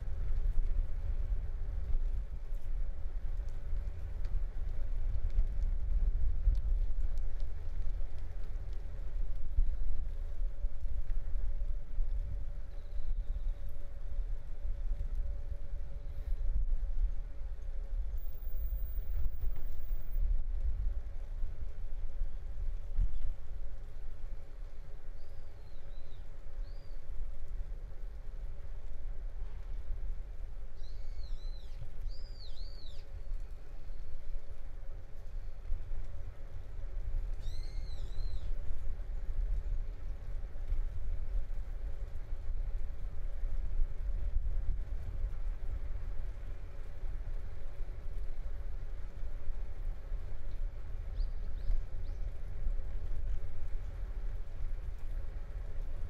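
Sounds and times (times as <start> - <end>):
faint steady hum: 0.0 - 56.0
low outdoor rumble: 0.0 - 56.0
songbird chirping: 30.8 - 33.5, 37.4 - 38.5.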